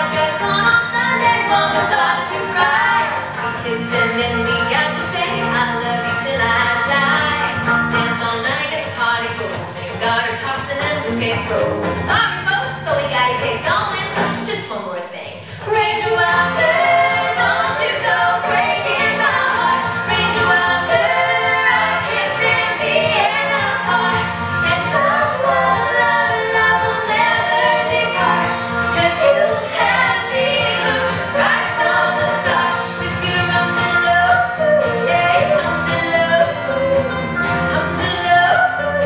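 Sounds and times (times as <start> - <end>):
electric bass: 0.0 - 8.4, 10.7 - 14.6, 15.7 - 39.0
backing singers: 0.0 - 8.8, 15.4 - 39.0
cajon beat: 0.0 - 14.5, 15.3 - 39.0
banjo: 0.0 - 14.6, 15.4 - 39.0
acoustic guitar: 0.0 - 39.0
live band music: 0.0 - 39.0
woman singing lead: 0.0 - 39.0.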